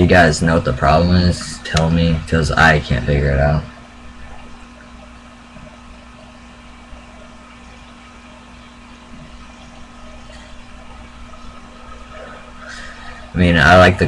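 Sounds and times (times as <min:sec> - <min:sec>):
low hum and faint hiss: 0:00.0 - 0:14.0.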